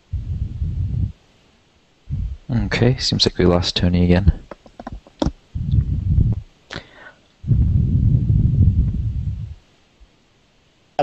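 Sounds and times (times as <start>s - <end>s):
low rumbling microphone noise: 0.0s - 10.1s.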